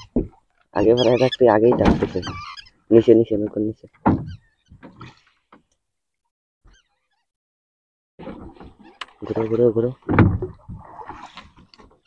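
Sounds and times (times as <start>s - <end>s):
faint water splashing: 8.2s - 12.0s.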